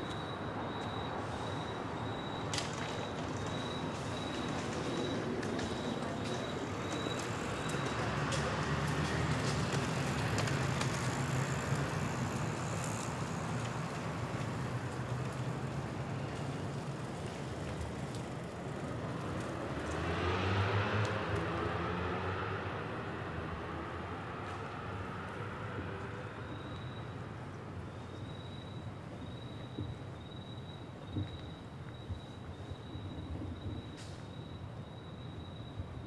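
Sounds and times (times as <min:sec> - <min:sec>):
cars passing: 0:00.0 - 0:28.2.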